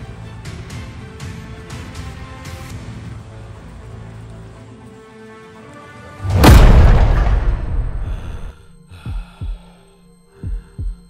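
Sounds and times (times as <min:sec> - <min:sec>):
heartbeat thumps: 0:09.0 - 0:11.0.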